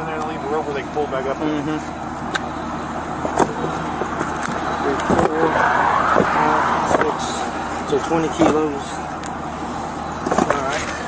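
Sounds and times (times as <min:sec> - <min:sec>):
low vehicle hum: 0:00.0 - 0:11.0
passing car road noise: 0:02.0 - 0:10.4.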